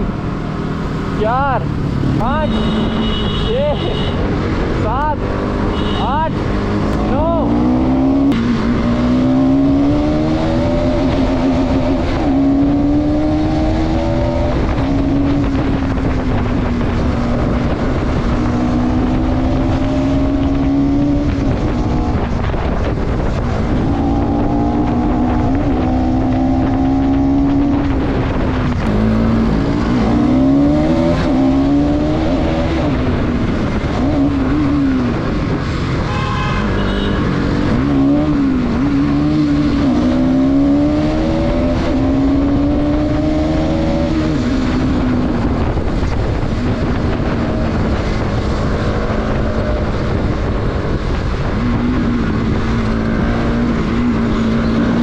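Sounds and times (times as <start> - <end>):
wind noise: 0.0 - 55.0
motorcycle engine accelerating: 4.1 - 55.0.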